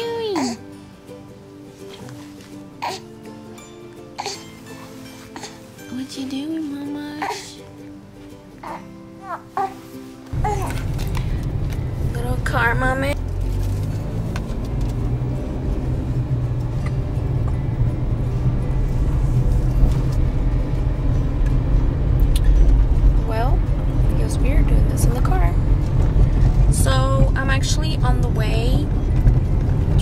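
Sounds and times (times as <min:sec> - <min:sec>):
car engine and road rumble: 0:10.3 - 0:30.0.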